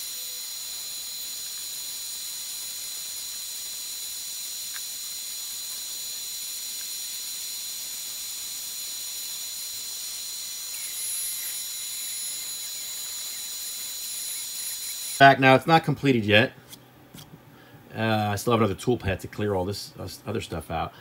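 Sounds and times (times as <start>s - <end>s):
router whining while carving wood: 0.0s - 15.2s
vacuum suction hiss: 0.0s - 21.0s.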